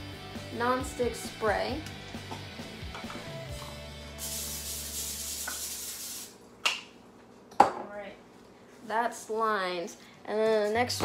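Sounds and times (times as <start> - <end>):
cooking spray hissing: 4.1 - 6.4.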